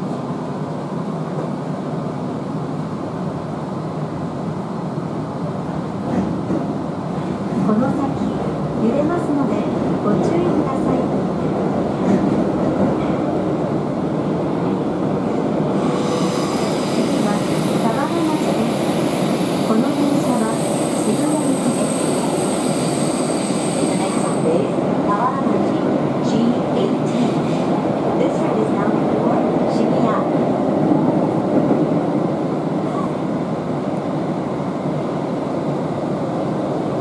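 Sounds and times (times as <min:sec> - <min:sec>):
subway train running rumble: 0:00.0 - 0:37.0.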